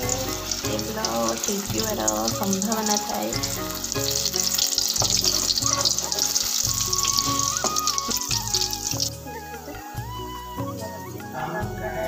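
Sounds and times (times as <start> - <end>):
food deep-frying in hot oil: 0.0 - 10.4
background music: 0.0 - 12.0.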